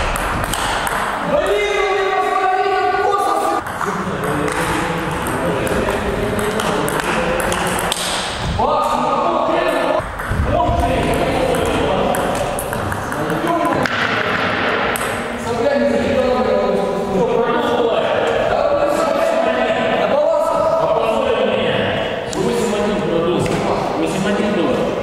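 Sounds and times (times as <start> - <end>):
voices in a hall: 0.0 - 25.0.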